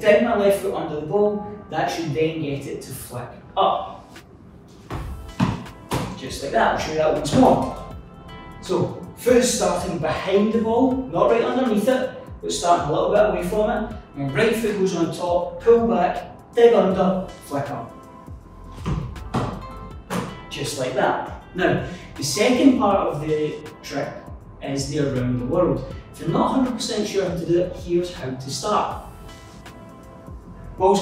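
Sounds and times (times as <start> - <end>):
soft background music: 0.0 - 31.0
football thumping on tiled floor: 4.9 - 6.2, 18.8 - 20.4
soft thuds of foot on football: 4.9 - 6.2.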